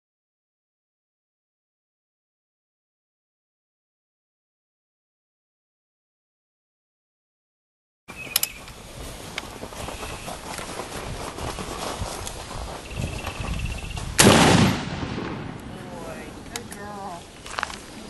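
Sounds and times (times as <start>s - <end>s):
outdoor background noise: 8.1s - 18.0s
loud pistol shot with echo: 14.2s - 15.8s.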